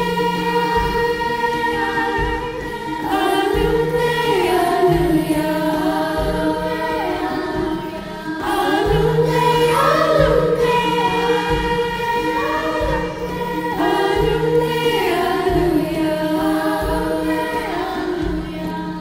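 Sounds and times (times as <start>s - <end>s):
girls' chorus singing lullaby: 0.0s - 19.0s
low sustained accompaniment: 0.0s - 19.0s.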